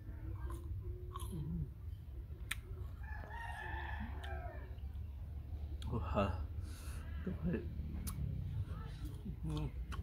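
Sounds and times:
rooster crowing: 0:03.0 - 0:04.8.

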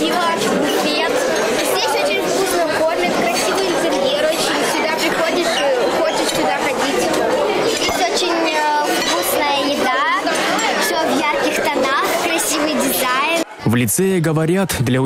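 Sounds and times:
children chattering: 0:00.0 - 0:13.7.

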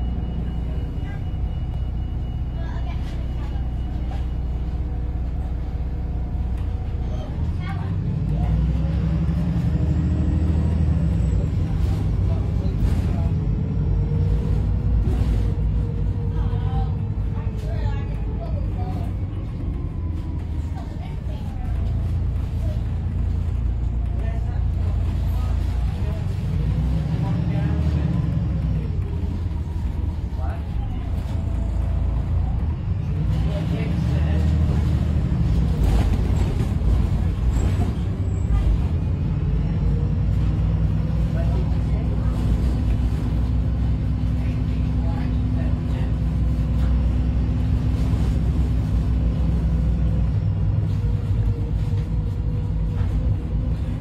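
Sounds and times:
bus diesel engine: 0:00.0 - 0:54.0
road rumble: 0:00.0 - 0:54.0.

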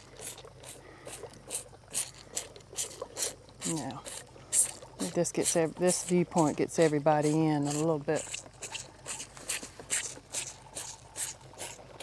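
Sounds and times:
calf sucking from bottle: 0:00.0 - 0:12.0.

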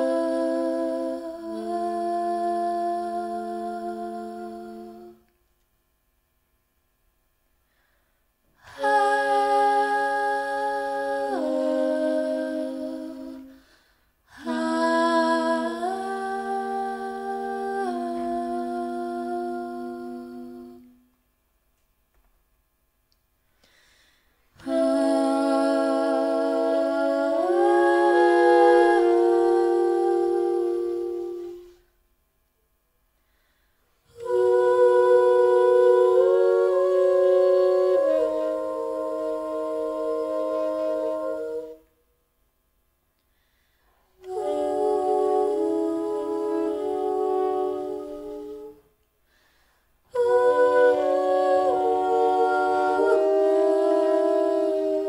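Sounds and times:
jazz big band chord: 0:44.2 - 0:48.6.

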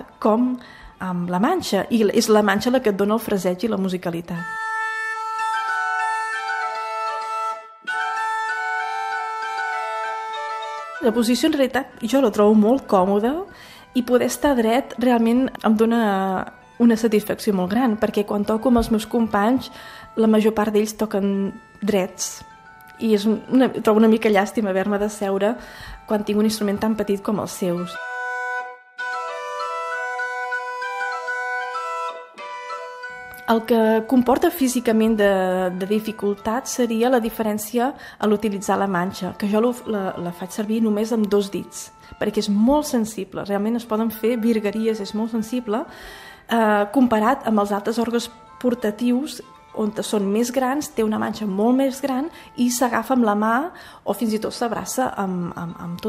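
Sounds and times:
organ melody over drone: 0:04.3 - 0:36.4
organ playing slow melody: 0:04.6 - 0:11.0, 0:28.0 - 0:33.4.

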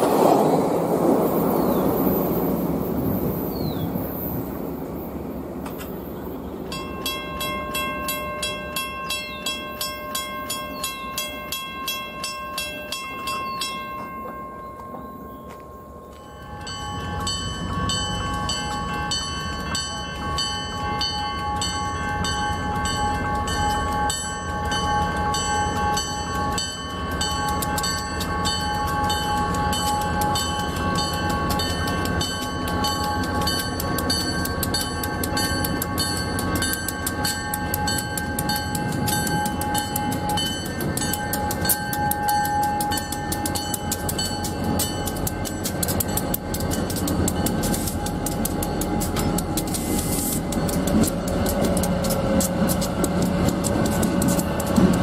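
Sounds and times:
diesel locomotives rumbling past: 0:00.0 - 0:55.0
crossing warning bell ringing: 0:01.7 - 0:55.0.

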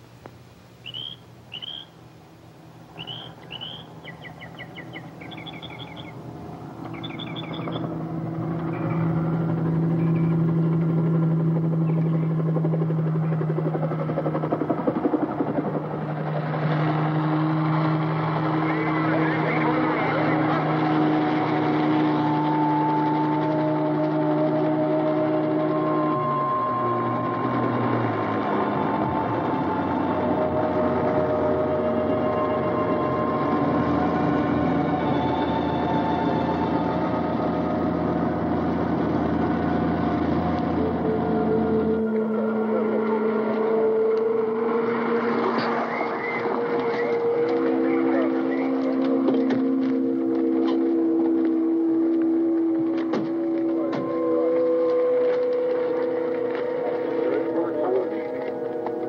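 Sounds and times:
birds chirping: 0:00.8 - 0:02.1, 0:02.9 - 0:09.2, 0:09.9 - 0:10.5, 0:11.7 - 0:12.6, 0:45.5 - 0:49.8
film score held low notes: 0:02.8 - 0:17.1, 0:17.7 - 0:59.0
helicopter engine and rotor: 0:03.6 - 0:59.0.

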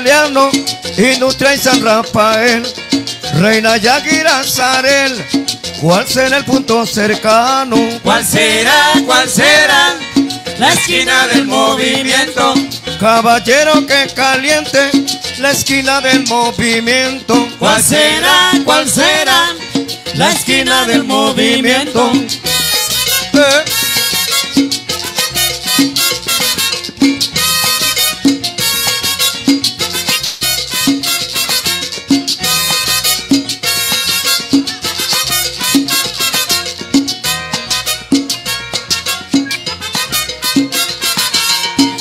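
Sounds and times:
percussion: 0:00.0 - 0:42.0
salsa band playing: 0:00.0 - 0:42.0
upright bass: 0:00.0 - 0:42.0
trumpets: 0:22.4 - 0:42.0.

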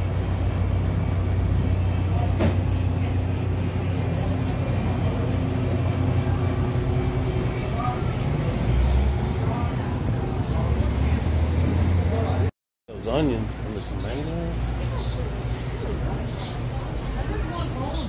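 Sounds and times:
low hum of refrigerated cases: 0:00.0 - 0:18.0
faint voices: 0:00.1 - 0:18.0.

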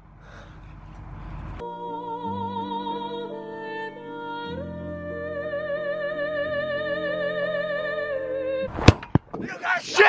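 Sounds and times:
background music: 0:01.6 - 0:08.7
excited shouting: 0:09.5 - 0:10.0.

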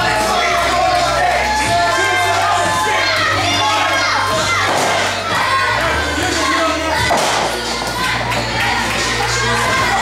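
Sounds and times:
background music with bass: 0:00.0 - 0:10.0
children shouting: 0:00.0 - 0:10.0.

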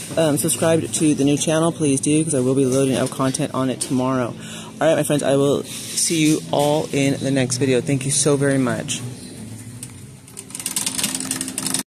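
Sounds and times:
shopping cart rattling: 0:00.0 - 0:04.3, 0:05.1 - 0:11.9.

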